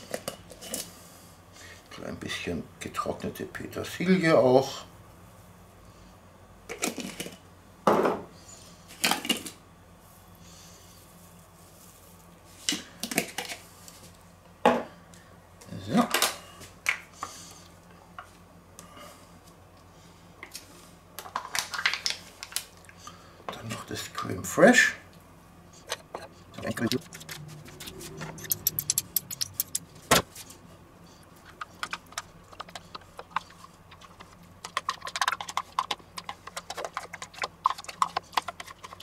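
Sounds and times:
spice shaker clacks: 26.8s - 29.9s, 31.4s - 39.0s
spoon clinking: 28.3s - 29.8s.

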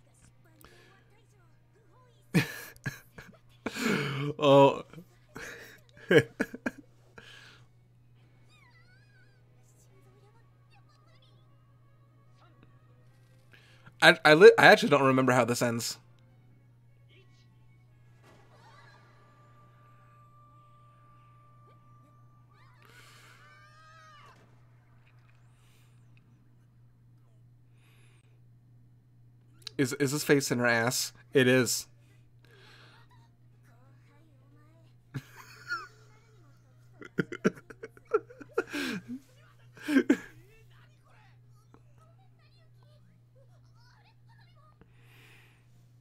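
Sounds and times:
low steady hum: 0.0s - 46.0s.

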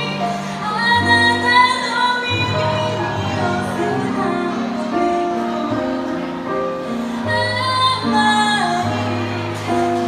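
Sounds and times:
stage piano: 0.0s - 10.0s
woman singing into microphone: 0.0s - 10.0s.

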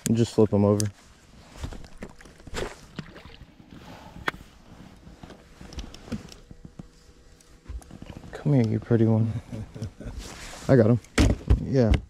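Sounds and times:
light knocks and clicks of fish: 1.6s - 3.4s.

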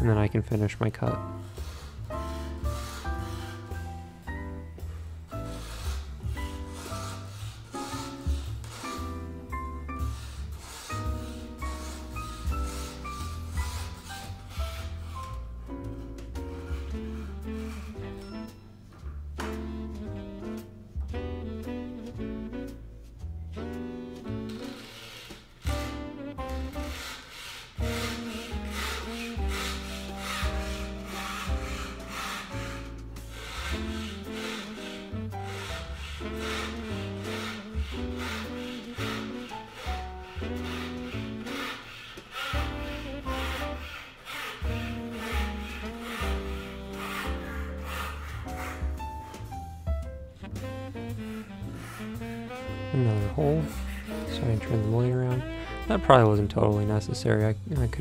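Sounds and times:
jazz music with bass line: 0.0s - 58.0s
fret saw cutting wood veneer: 0.5s - 18.6s, 23.6s - 57.4s.

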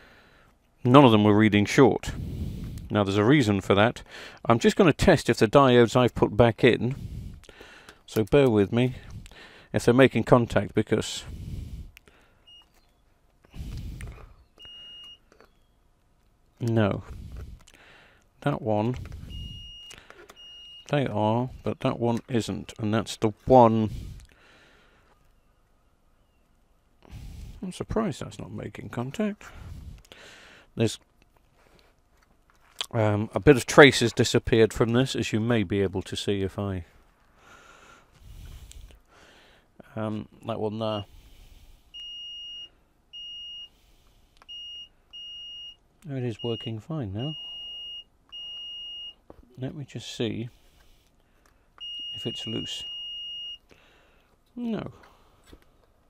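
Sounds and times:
multimeter continuity beep: 12.4s - 12.9s, 13.5s - 15.7s, 18.9s - 20.9s, 41.9s - 43.8s, 44.4s - 45.8s, 46.4s - 49.2s, 51.8s - 53.7s.

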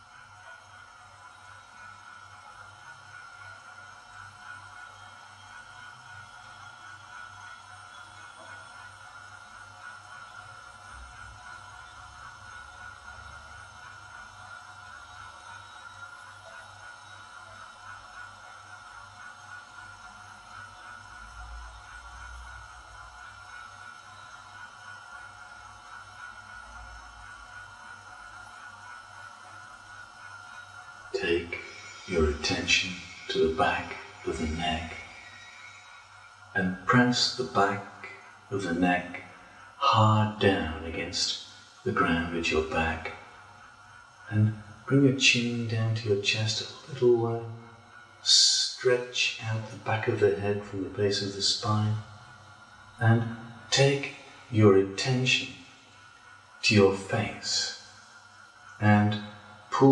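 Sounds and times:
ambient drone music: 29.5s - 43.4s.

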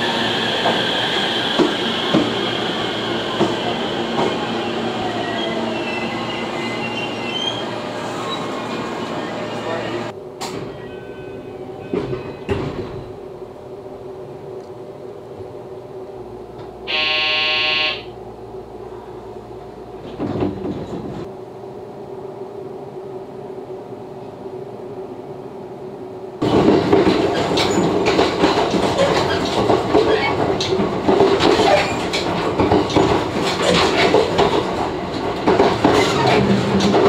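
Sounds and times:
moving train running noise: 0.0s - 37.0s
rail-joint clatter and rattles: 11.8s - 13.2s, 19.6s - 21.3s, 26.4s - 37.0s
loud steady tone: 16.8s - 18.2s.

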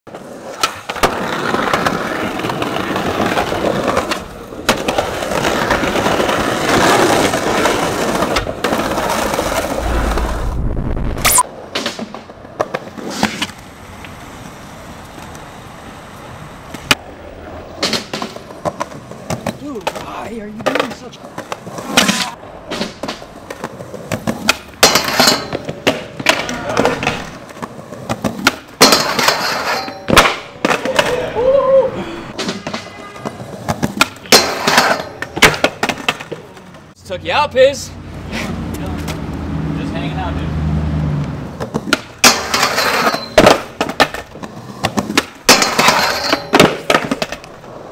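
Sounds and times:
skateboard pops and clacks on concrete: 0.1s - 9.7s, 11.5s - 15.5s, 16.7s - 17.1s, 17.7s - 31.2s, 32.3s - 36.8s, 41.5s - 47.9s
skateboard wheels rolling on pavement: 0.1s - 47.9s.

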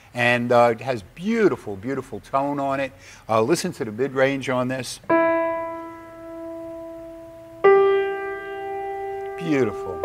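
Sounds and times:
grand piano notes ringing: 5.0s - 10.0s.

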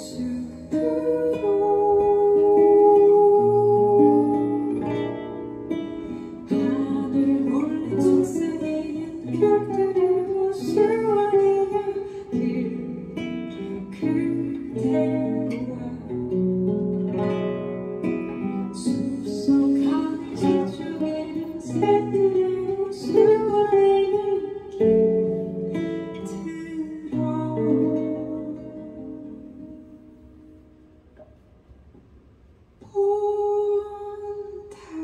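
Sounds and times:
woman singing: 0.0s - 30.1s, 32.8s - 35.0s
acoustic guitar: 0.0s - 35.0s.

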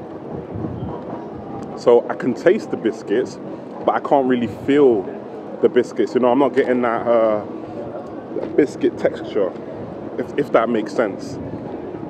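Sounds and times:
low rumble of city noise: 0.0s - 12.0s
man speaking: 1.8s - 7.5s, 8.4s - 9.5s, 10.2s - 11.4s.

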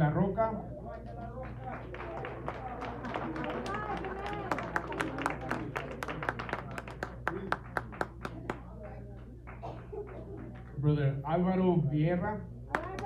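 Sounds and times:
small audience clapping: 0.9s - 10.8s, 12.7s - 13.0s.

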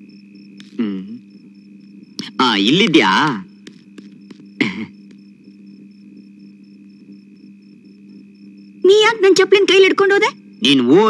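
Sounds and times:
faint high whine: 0.0s - 11.0s
low electrical hum: 0.0s - 11.0s
person speaking: 0.6s - 1.2s, 2.2s - 3.8s.

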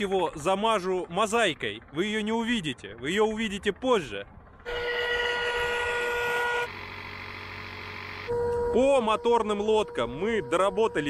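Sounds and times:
electric air pump droning: 6.4s - 8.7s.

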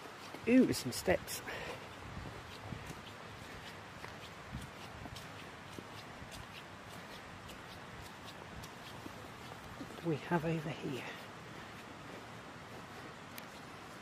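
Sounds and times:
footsteps on wet gravel: 0.0s - 14.0s
steady background hiss: 0.0s - 14.0s.

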